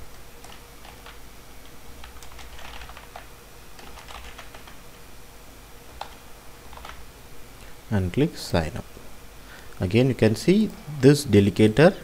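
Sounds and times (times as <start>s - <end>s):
computer keyboard typing: 0.4s - 4.8s, 5.9s - 7.0s.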